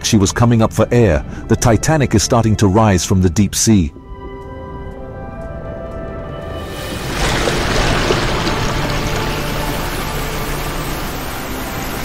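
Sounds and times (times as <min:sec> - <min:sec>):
churning surging water: 0:06.6 - 0:12.0.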